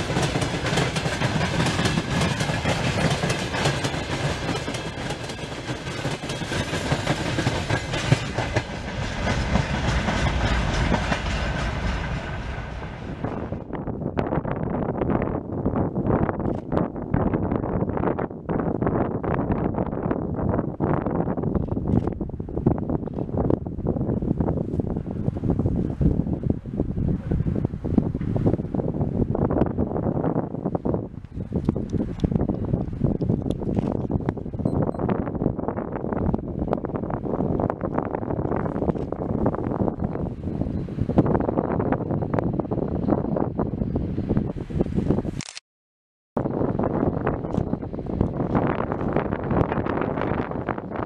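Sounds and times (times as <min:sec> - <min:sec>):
wind buffeting microphone: 0:00.0 - 0:45.4, 0:46.4 - 0:51.0.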